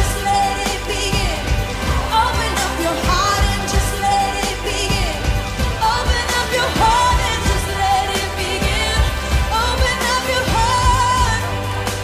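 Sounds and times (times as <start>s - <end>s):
pop song with drum beat: 0.0s - 12.0s.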